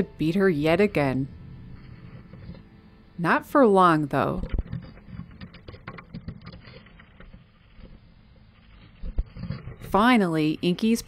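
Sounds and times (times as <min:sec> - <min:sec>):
bird scratching and tapping in nest box: 0:04.5 - 0:08.0.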